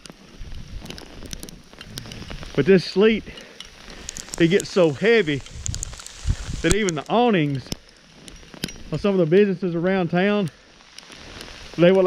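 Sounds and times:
faint ticks: 0:00.0 - 0:02.6, 0:03.3 - 0:08.9, 0:10.4 - 0:12.0
wind rumbling against microphone: 0:00.0 - 0:09.2.

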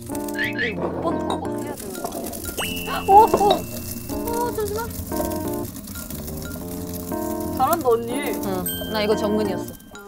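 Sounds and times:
background music of held notes: 0:00.0 - 0:10.0.

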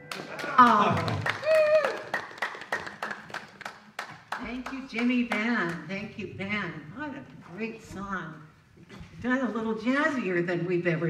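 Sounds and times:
group hand clapping: 0:00.0 - 0:05.9.

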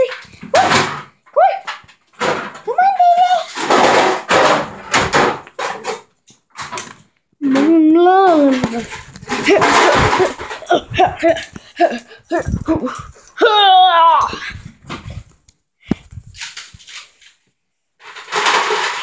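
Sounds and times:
scuffling with thumps: 0:07.6 - 0:13.4.

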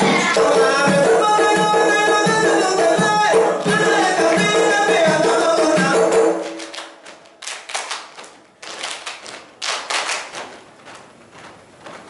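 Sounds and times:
dancers clapping and slapping hands: 0:05.8 - 0:10.7.

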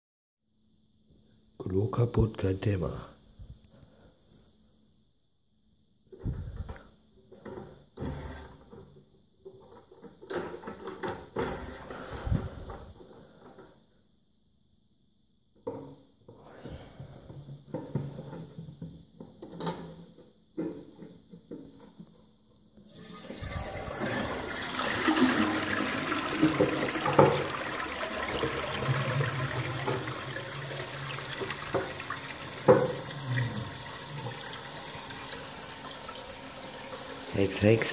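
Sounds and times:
toilet flushing: 0:08.0 - 0:08.7, 0:22.9 - 0:37.9.

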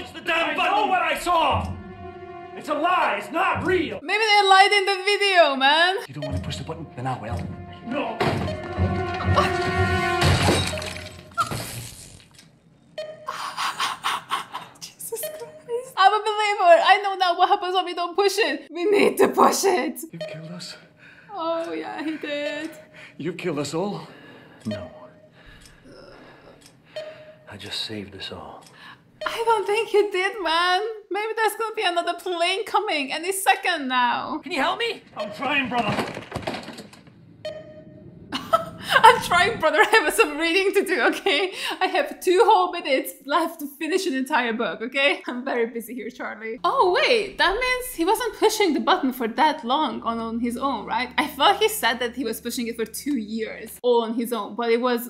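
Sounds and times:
dramatic music: 0:00.0 - 0:05.0, 0:06.0 - 0:11.4
computer terminal smashing: 0:10.2 - 0:12.3, 0:35.4 - 0:37.1
glass shattering: 0:10.2 - 0:12.3.

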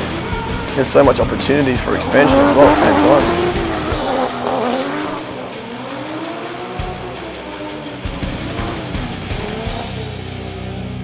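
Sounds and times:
background music: 0:00.0 - 0:11.0
car engine revving: 0:00.0 - 0:11.0
tyres squealing on tarmac: 0:00.1 - 0:05.2.

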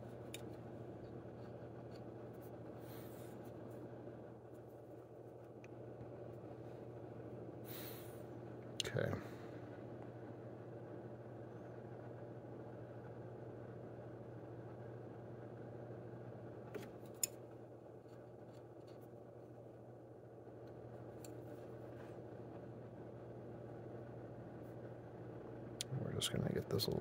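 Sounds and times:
low hum of small motor: 0:00.0 - 0:27.0.

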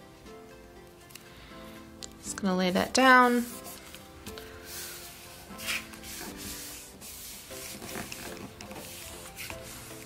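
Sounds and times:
quiet background music: 0:00.0 - 0:10.0
dry paper rustles: 0:03.4 - 0:10.0.

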